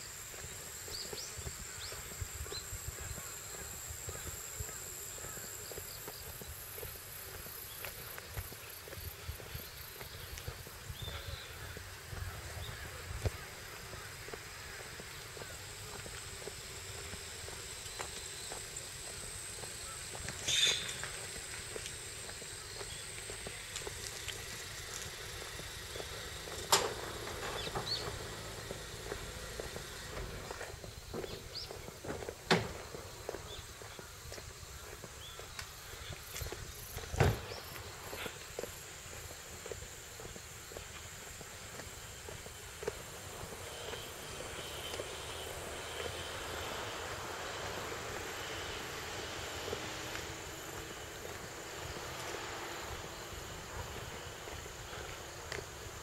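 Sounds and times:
faint insect chirring: 0.0s - 56.0s.

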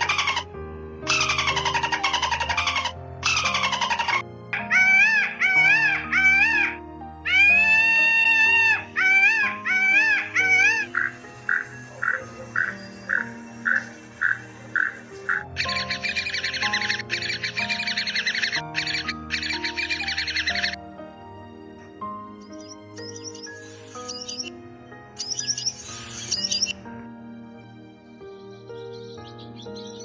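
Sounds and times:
peafowl wailing calls: 0.0s - 20.8s
toucan calls and rattling croaks: 0.0s - 20.8s
background music: 0.0s - 30.0s.

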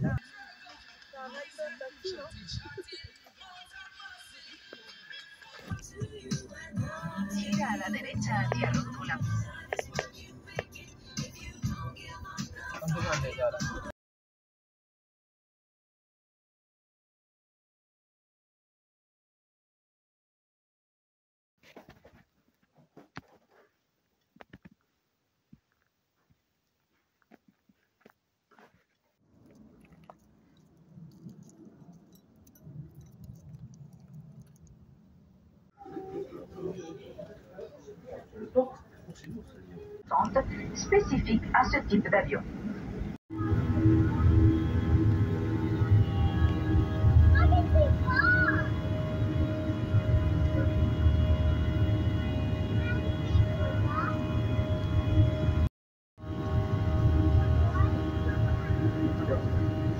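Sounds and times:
wind buffeting microphone: 0.0s - 0.2s
airliner engine drone: 40.1s - 59.9s.

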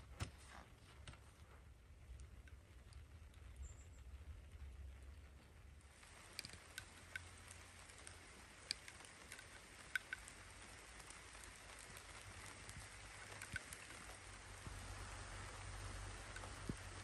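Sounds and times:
faint steady hiss: 0.0s - 17.0s
light ticks: 1.0s - 17.0s.

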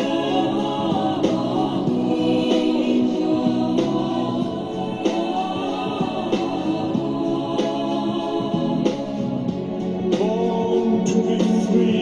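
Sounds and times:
choir-like voices singing: 0.0s - 12.0s.

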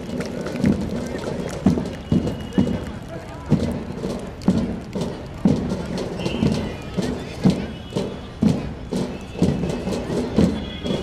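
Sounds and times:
marching band drums: 0.0s - 11.0s.

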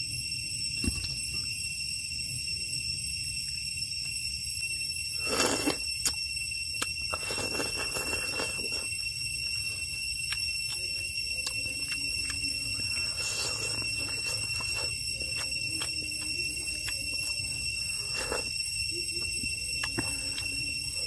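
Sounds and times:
high-pitched whine: 0.0s - 21.0s
slurping porridge from spoon: 5.2s - 6.2s, 6.8s - 10.8s, 11.6s - 18.7s
wet chewing and mouth clicks: 5.2s - 21.0s.

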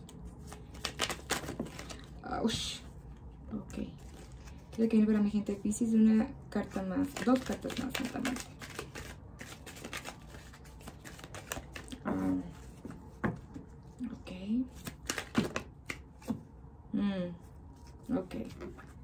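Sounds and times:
cards being shuffled: 0.0s - 2.2s, 3.9s - 5.7s, 6.6s - 13.6s, 14.6s - 16.4s.

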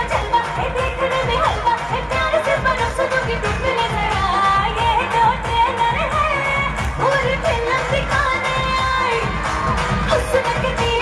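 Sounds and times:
loud amplified music with beat: 0.0s - 11.0s
woman singing into microphone: 0.0s - 11.0s.

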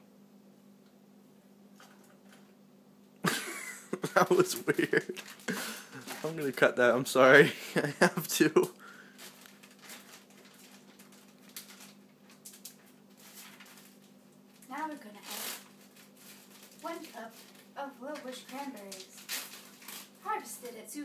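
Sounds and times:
steady low hum: 0.0s - 21.0s
soft talking or laughter: 3.2s - 6.4s, 7.2s - 8.8s.

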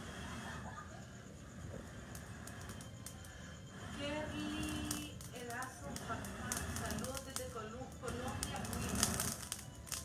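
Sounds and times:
meat hissing on grill: 2.0s - 10.0s
small quick crackles: 4.6s - 10.0s.

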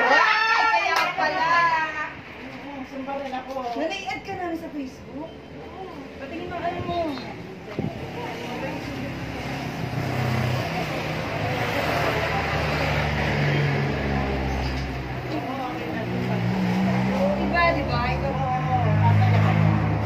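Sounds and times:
people talking: 0.0s - 20.0s.

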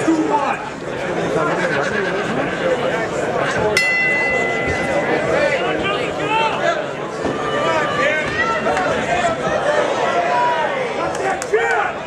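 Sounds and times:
crowd chatter: 0.0s - 12.0s
boxing ring bell ringing: 3.8s - 6.3s.

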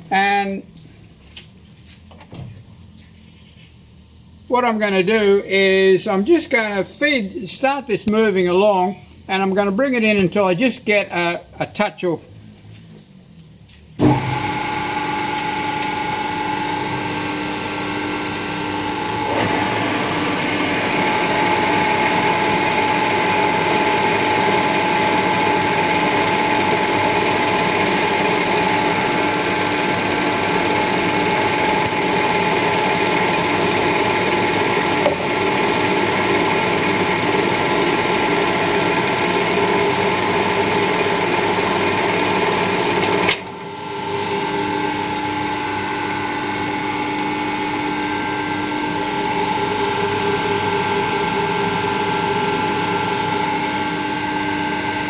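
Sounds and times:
metal lathe running with gear whine: 14.0s - 55.0s.

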